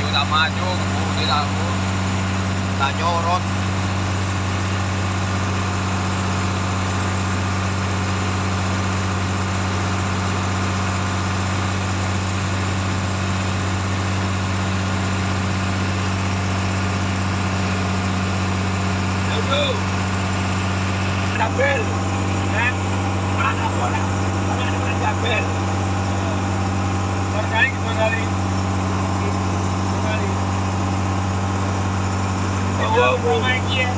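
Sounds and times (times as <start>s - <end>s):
boat diesel engine drone: 0.0s - 33.9s.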